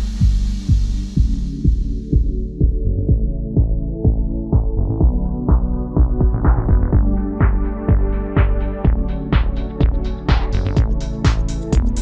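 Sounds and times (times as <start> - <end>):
electronic music kick drum: 0.0 - 12.0
low bass line: 0.0 - 12.0.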